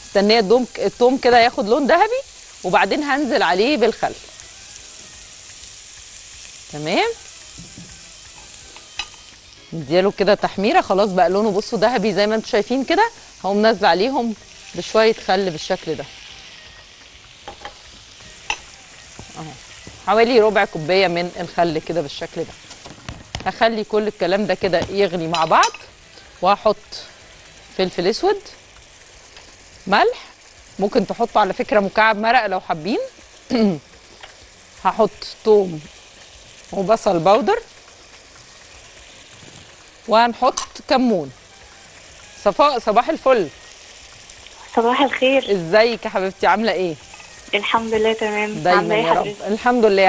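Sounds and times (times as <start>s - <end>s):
frying pan bubbling hiss: 0.0s - 50.0s
vegetables sizzling in hot oil: 0.0s - 50.0s.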